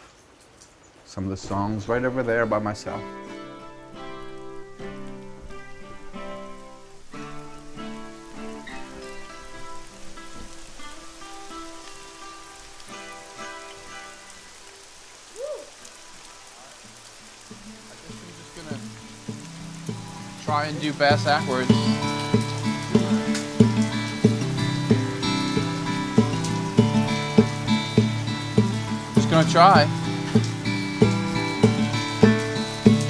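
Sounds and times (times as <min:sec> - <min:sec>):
steady rain: 0:00.0 - 0:33.0
guitar picking ringing chords: 0:02.0 - 0:14.5, 0:17.6 - 0:33.0.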